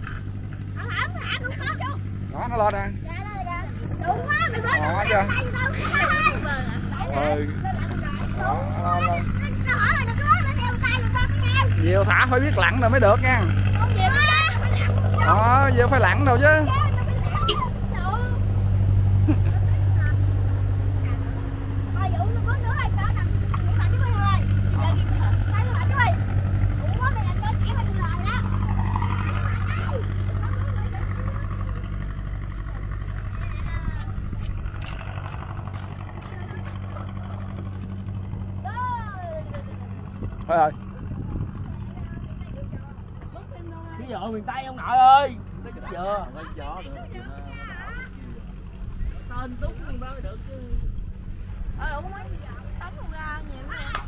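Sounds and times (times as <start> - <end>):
children's voices and calls: 0.0 - 54.0
low engine hum: 0.0 - 54.0.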